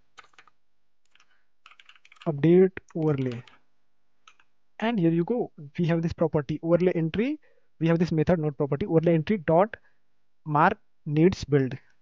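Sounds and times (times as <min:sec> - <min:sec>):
computer keyboard typing: 0:00.1 - 0:03.6, 0:04.2 - 0:04.5.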